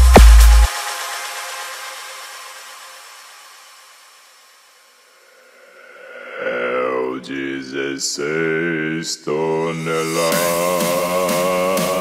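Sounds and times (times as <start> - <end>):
electronic music: 0.0 - 5.1, 10.0 - 12.0.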